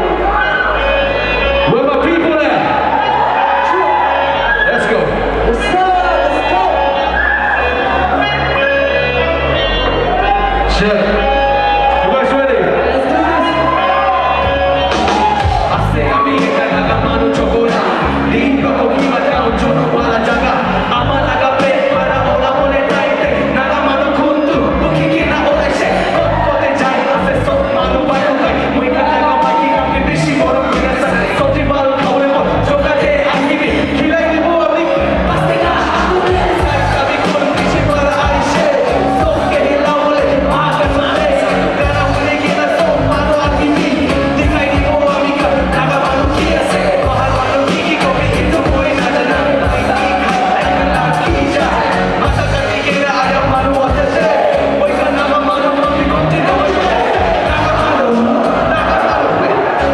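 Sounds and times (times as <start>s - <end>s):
bass-heavy hip-hop beat: 0.0s - 59.9s
man rapping into a microphone: 1.4s - 9.8s, 10.5s - 14.7s, 15.3s - 59.9s.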